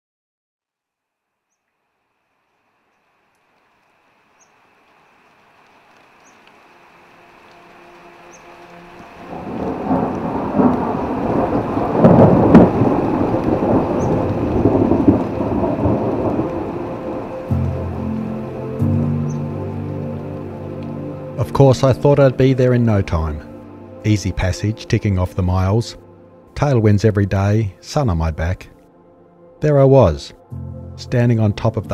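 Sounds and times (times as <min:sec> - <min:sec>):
rain: 0:01.6 - 0:27.1
steady low tones: 0:04.7 - 0:31.9
rolling thunder: 0:09.0 - 0:18.6.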